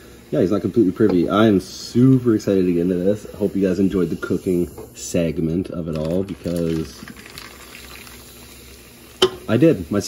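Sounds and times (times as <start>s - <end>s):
cola fizzing: 5.7s - 10.0s
cola pouring over ice: 5.8s - 9.4s.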